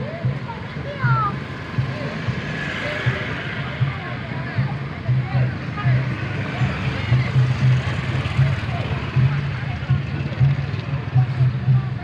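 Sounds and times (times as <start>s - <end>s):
crowd voices: 0.0s - 12.0s
low rhythmic drum beat: 0.0s - 12.0s
motorbikes on the road: 0.0s - 12.0s.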